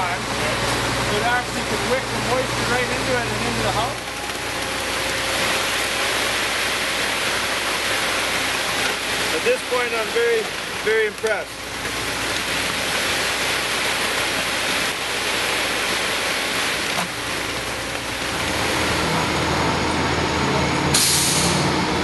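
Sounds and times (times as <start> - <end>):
truck diesel engine running: 0.0 - 22.0
loud burst of hissing air: 20.9 - 21.6.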